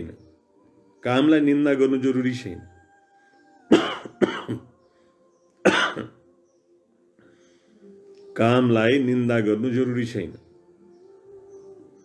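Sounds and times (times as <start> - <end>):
man coughing: 3.7 - 4.7, 5.7 - 6.2.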